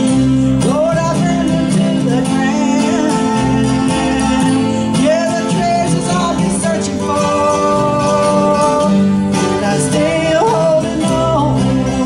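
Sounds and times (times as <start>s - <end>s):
acoustic guitars: 0.0s - 12.0s
person singing: 0.0s - 12.0s.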